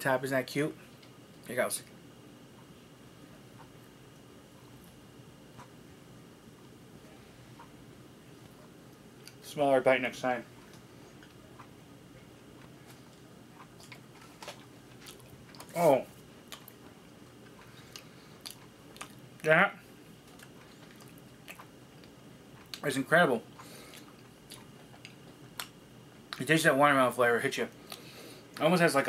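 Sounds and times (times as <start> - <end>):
chewing food: 12.5 - 19.4, 20.1 - 22.8, 23.6 - 26.4.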